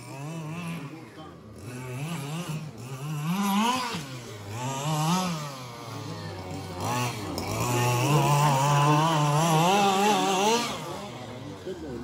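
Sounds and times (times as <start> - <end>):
two-stroke engine revving: 0.0 - 12.0.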